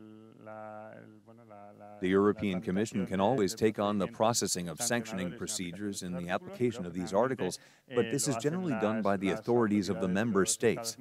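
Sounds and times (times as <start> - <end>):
surrounding speech: 2.0 - 11.0.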